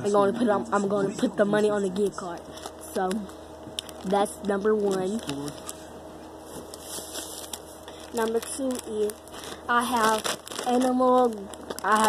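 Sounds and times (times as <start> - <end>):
plastic wrappers crinkling: 2.2 - 5.9, 6.5 - 12.0.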